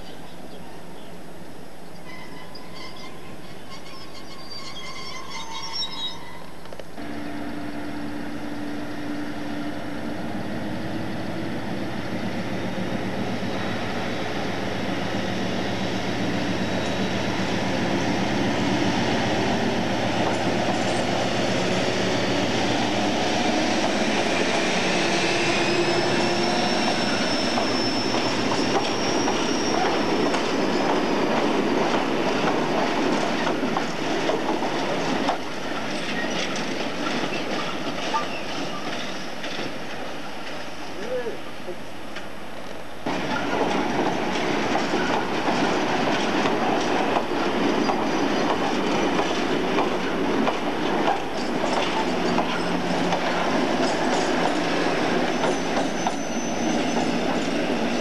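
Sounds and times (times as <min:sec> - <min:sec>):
high wheel squeal: 0:02.0 - 0:07.6, 0:15.3 - 0:18.2, 0:24.8 - 0:31.3, 0:53.9 - 0:58.0
diesel locomotive engine hum: 0:06.6 - 0:35.9
wheels clicking over rail joints: 0:43.1 - 0:57.8
wagon wheels rumbling on rails: 0:43.1 - 0:58.0.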